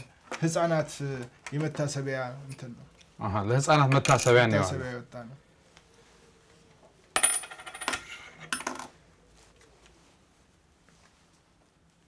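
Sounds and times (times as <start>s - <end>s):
metal coins clinking: 7.2s - 8.9s.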